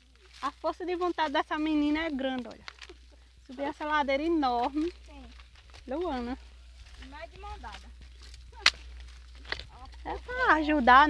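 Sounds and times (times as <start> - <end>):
sharp crack: 8.5 - 9.7.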